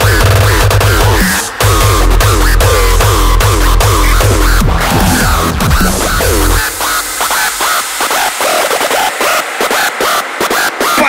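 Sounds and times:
heavy electronic bass: 0:00.0 - 0:08.5
stuttering pitch-bending synth: 0:00.0 - 0:08.9.

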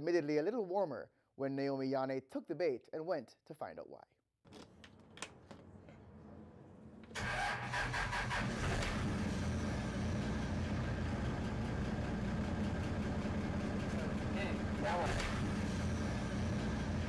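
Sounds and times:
boat engine starting and idling: 0:07.1 - 0:17.0.

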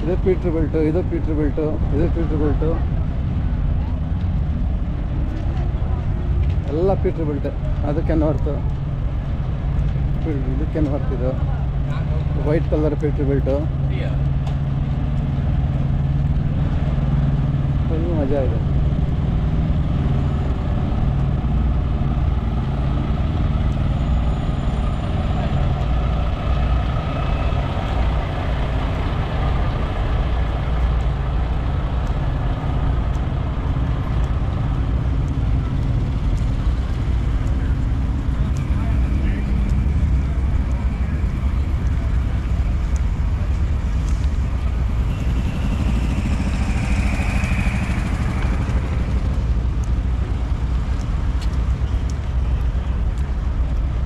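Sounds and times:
diesel truck engines idling: 0:00.0 - 0:54.0.

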